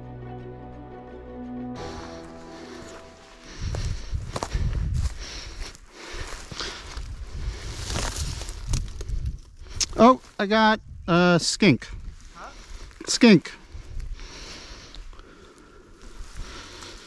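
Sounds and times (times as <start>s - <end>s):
background music: 0.0s - 4.2s
footsteps through long grass: 1.8s - 10.4s, 13.6s - 17.0s.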